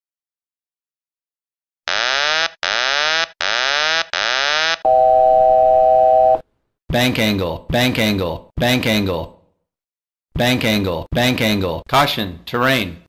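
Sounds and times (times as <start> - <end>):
steady multi-pitch warning tone: 1.9 - 6.4.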